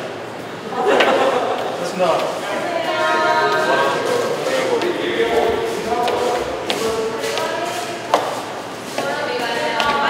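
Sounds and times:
indistinct voices: 0.6s - 10.0s.

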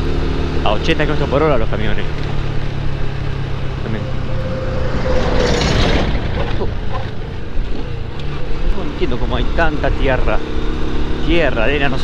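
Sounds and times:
motorcycle engine running: 0.0s - 12.0s
truck passing: 0.0s - 12.0s.

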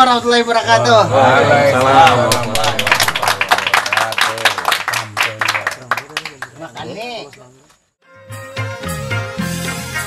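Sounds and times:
audience applause: 1.7s - 6.7s
music: 8.0s - 10.0s.

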